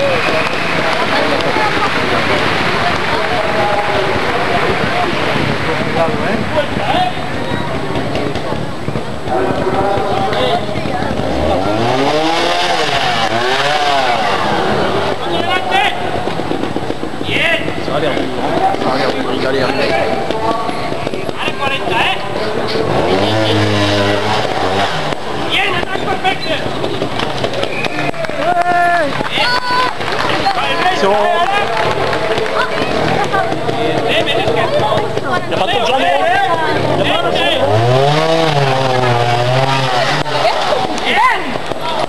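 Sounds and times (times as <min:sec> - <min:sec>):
motorcycle engine revving: 0:00.0 - 0:28.4, 0:29.2 - 0:42.0
spectators talking: 0:00.0 - 0:42.0.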